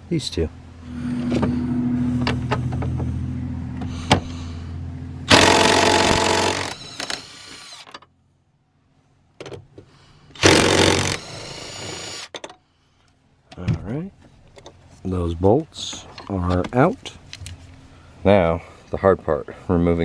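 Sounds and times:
impact driver hammering: 5.3s - 7.6s, 10.4s - 12.5s
impact driver motor whirring: 5.3s - 7.9s, 10.4s - 12.3s.

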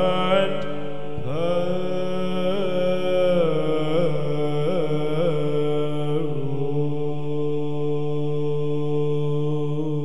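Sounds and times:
person chanting a long note: 0.0s - 10.0s.

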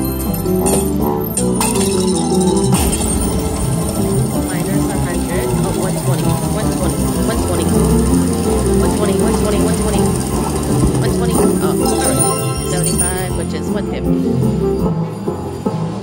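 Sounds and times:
slot machine bonus music: 0.0s - 15.2s
voices: 4.2s - 14.2s
chiming win effects: 11.0s - 13.8s.

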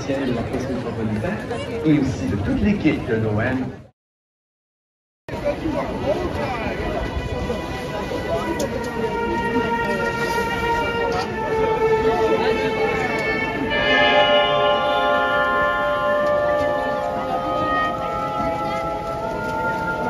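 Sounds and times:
crowd chatter: 0.0s - 3.9s, 5.3s - 20.0s
symphony orchestra over speakers: 5.4s - 20.0s.

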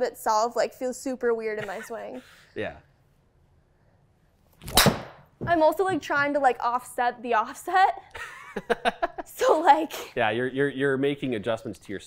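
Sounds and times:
club striking golf ball: 4.6s - 5.3s.

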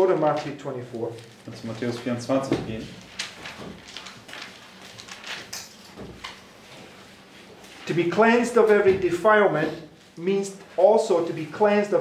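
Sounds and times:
man speaking: 0.0s - 3.0s, 7.9s - 12.0s
book pages rustling: 0.1s - 7.9s.

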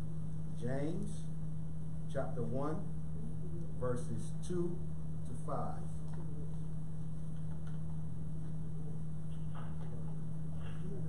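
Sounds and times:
faint background hiss: 0.0s - 11.0s
low electrical hum: 0.0s - 11.0s.

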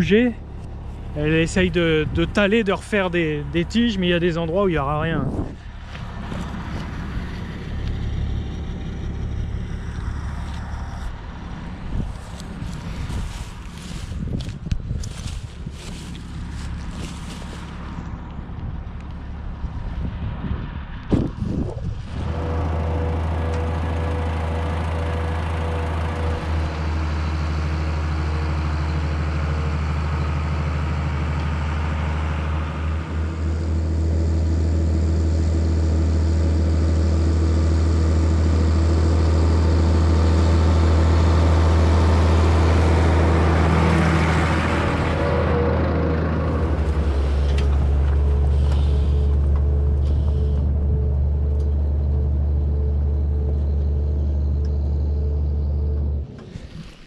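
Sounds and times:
tractor diesel engine running: 0.0s - 57.0s.

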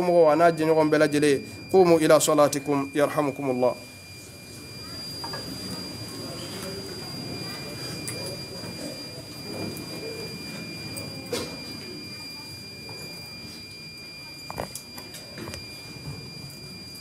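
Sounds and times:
murmur of congregation: 0.0s - 16.9s
high-pitched electronic whine: 0.0s - 17.0s.

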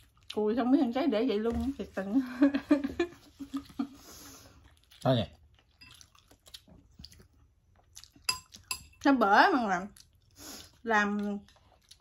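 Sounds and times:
people chewing: 0.0s - 12.0s.

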